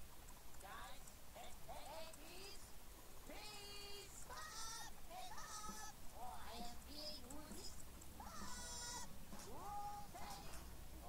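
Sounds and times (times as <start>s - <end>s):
high-pitched cartoon voices: 3.3s - 10.6s.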